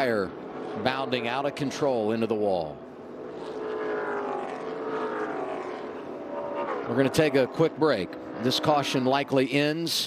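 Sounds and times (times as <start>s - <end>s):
race car engines passing: 0.0s - 10.0s.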